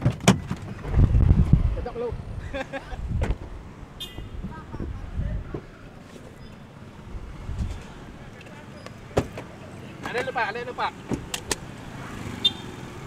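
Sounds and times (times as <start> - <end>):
traffic rumble: 0.0 - 13.0.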